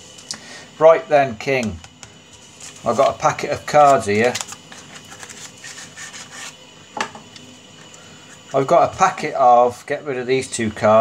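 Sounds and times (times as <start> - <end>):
cards sliding out of box: 3.8 - 6.6.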